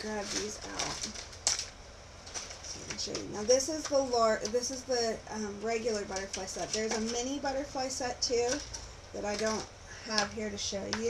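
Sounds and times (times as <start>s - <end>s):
faint rustling: 0.0s - 11.0s.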